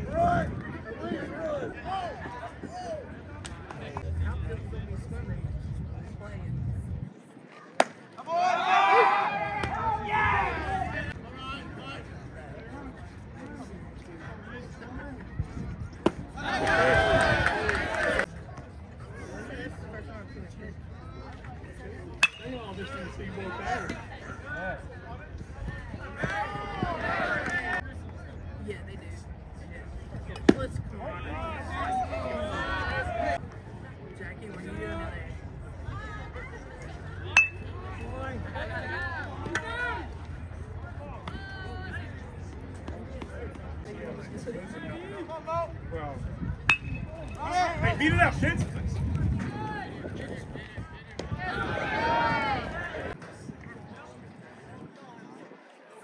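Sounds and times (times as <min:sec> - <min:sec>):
spectators chatting: 0:00.0 - 0:56.0
players and spectators shouting: 0:08.2 - 0:12.0, 0:16.3 - 0:18.3, 0:26.0 - 0:27.8, 0:31.0 - 0:33.4, 0:51.3 - 0:53.2
metal bat hitting ball: 0:22.2 - 0:22.6, 0:37.4 - 0:37.7, 0:46.7 - 0:47.2.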